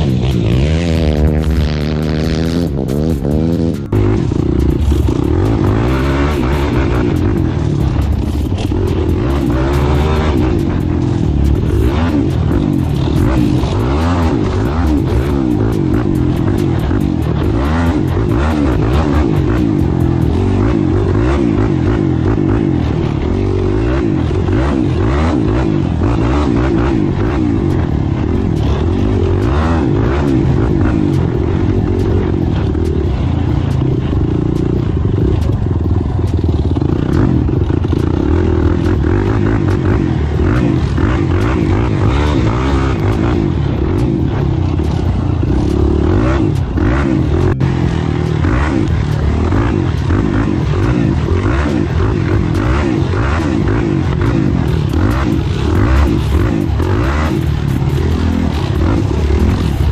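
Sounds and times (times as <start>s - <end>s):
atv engine revving: 0.0s - 59.9s.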